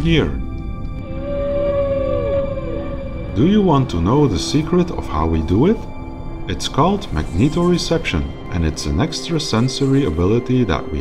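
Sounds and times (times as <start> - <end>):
soft background music: 0.0 - 11.0
humpback whale call: 1.0 - 6.1.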